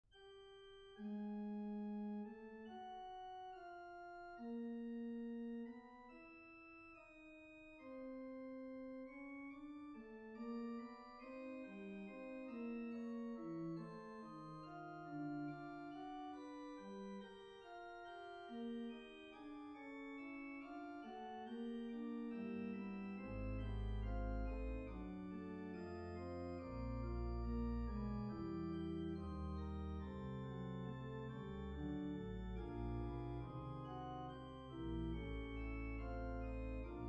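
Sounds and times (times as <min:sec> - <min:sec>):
organ playing sustained chords: 0:00.5 - 0:37.0.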